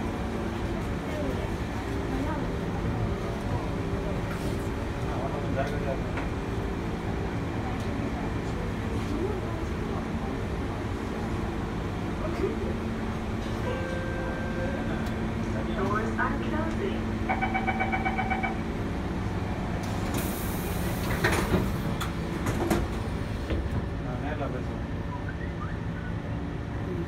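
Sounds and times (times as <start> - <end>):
train humming: 0.0 - 27.0.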